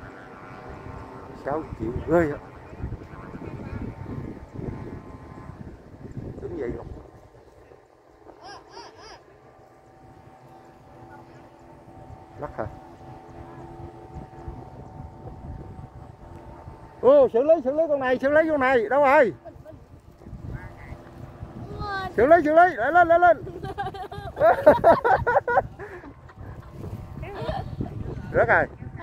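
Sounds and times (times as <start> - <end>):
wind buffeting microphone: 0.0 - 8.4, 9.2 - 29.0
kite flutes droning: 0.0 - 24.6
distant voices: 0.0 - 29.0.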